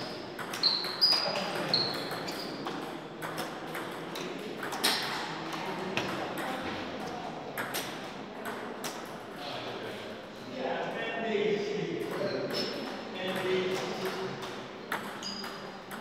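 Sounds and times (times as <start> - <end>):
voices echoing in a hall: 0.0 - 16.0
table tennis ball pings: 14.9 - 16.0.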